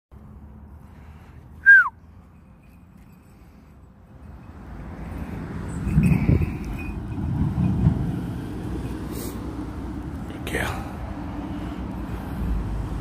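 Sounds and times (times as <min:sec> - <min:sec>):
wind buffeting microphone: 0:05.4 - 0:09.9.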